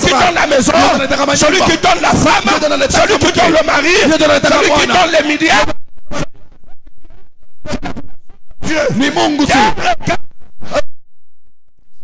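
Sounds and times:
rasping noise on microphone: 0:05.6 - 0:08.9, 0:09.6 - 0:11.0.

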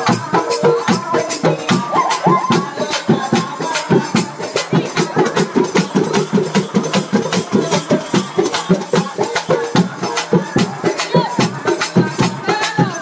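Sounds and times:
frame drum and barrel drum beat: 0:00.0 - 0:13.0.

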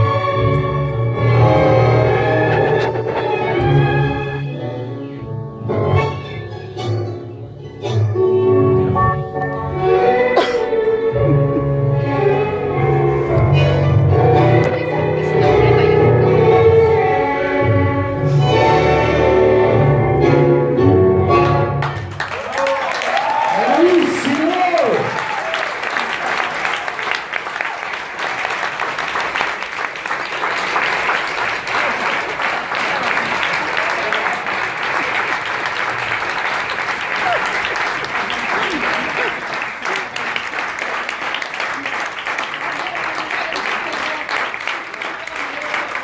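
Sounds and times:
bowed strings tango music: 0:00.0 - 0:22.0
audience applauding: 0:21.4 - 0:46.0.

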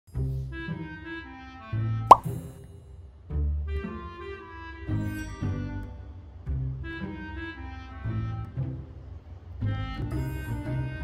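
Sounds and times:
music with bass and woodwind melody: 0:00.2 - 0:02.1, 0:03.3 - 0:11.0.

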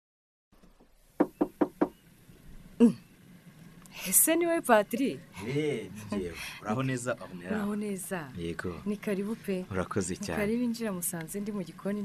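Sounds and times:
knocks on a door: 0:01.2 - 0:02.0.

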